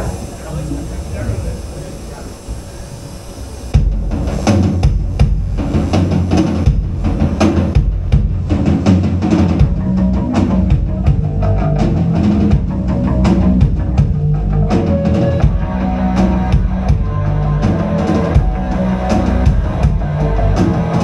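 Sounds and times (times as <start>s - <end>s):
loud driving drum kit: 3.7s - 21.0s
live rock band playing: 7.0s - 21.0s.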